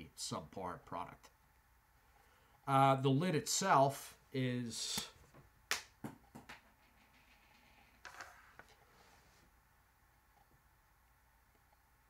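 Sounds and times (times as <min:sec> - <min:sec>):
soft rustle: 0:07.0 - 0:09.6.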